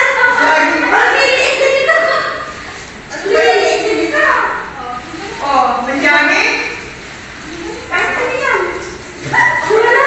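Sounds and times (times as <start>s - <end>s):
women laughing: 1.2s - 2.8s.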